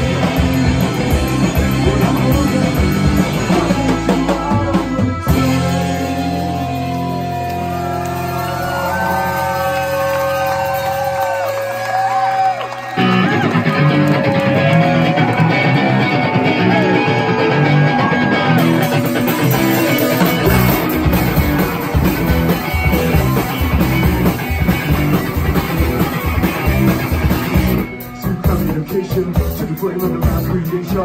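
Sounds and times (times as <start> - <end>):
electric guitar bending notes: 0.0 - 11.3, 12.9 - 30.3
live rock band: 0.0 - 31.0.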